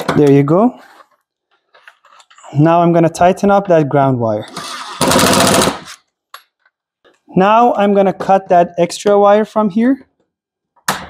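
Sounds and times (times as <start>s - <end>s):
impact driver rattling: 4.5s - 6.0s.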